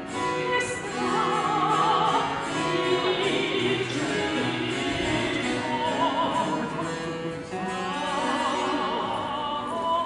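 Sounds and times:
person singing with vibrato: 0.0s - 10.0s.

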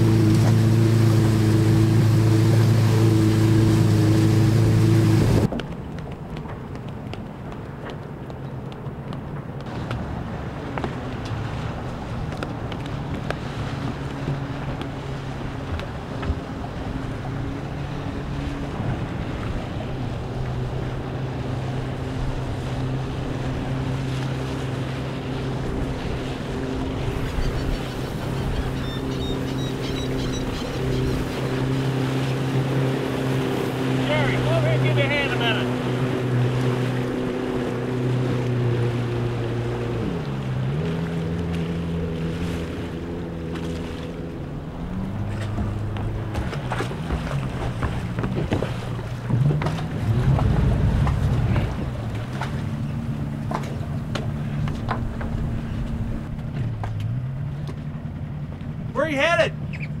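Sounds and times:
motorboat engine running: 0.0s - 60.0s.

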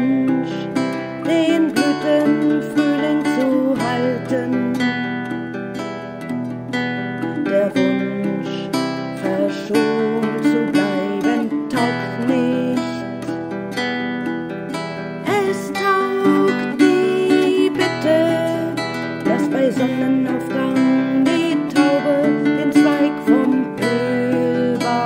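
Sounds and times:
acoustic guitar playing: 0.0s - 25.0s.

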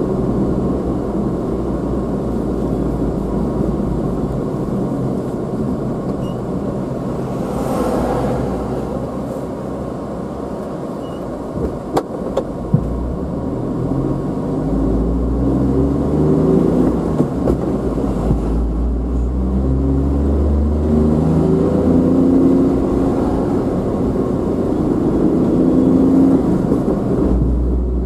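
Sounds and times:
car engine accelerating: 0.0s - 10.7s, 12.5s - 28.0s
road noise rumble: 0.0s - 28.0s.

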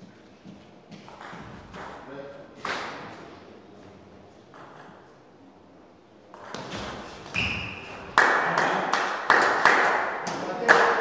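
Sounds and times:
table tennis ball bouncing: 0.9s - 2.0s, 4.5s - 5.1s, 6.3s - 11.0s.

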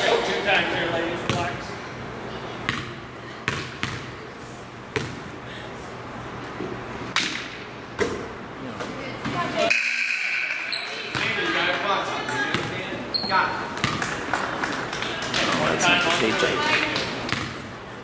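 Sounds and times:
voices in a gym: 0.0s - 18.0s
basketball bouncing on wooden floor: 3.5s - 4.1s, 5.0s - 5.2s, 13.8s - 14.1s.

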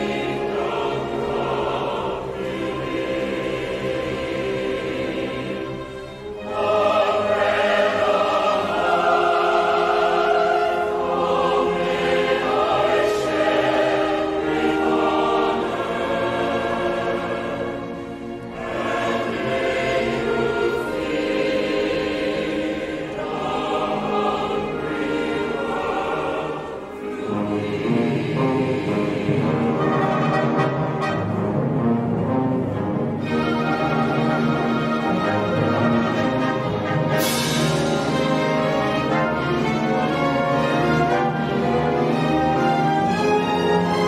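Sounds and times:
mixed choir singing: 0.0s - 44.0s
orchestral accompaniment: 0.0s - 44.0s.

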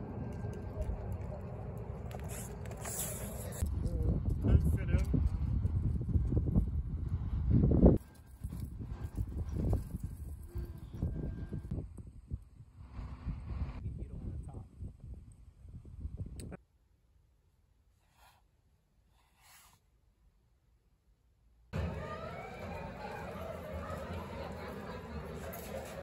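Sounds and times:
wind on microphone: 3.5s - 16.6s
indistinct voices: 21.8s - 26.0s.

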